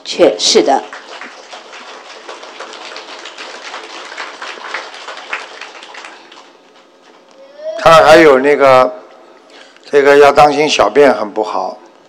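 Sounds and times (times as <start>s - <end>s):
room tone hiss: 0.0s - 12.0s.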